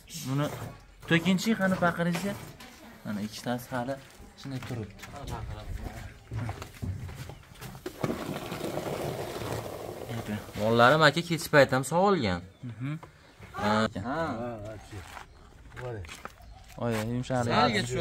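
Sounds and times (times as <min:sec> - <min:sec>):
outdoor noise: 0:00.0 - 0:18.0
milk pouring into plastic pail: 0:07.7 - 0:10.6.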